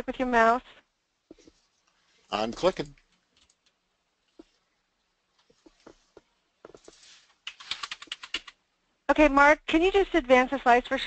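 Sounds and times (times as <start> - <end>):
computer keyboard typing: 6.7 - 8.6.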